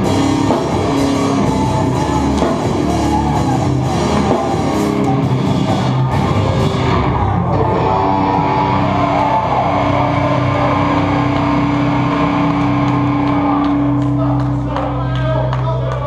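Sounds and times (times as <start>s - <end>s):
drum and cymbal hits: 0.0s - 7.2s
distorted guitar chord ringing: 0.0s - 14.7s
punk band playing live: 0.0s - 16.0s.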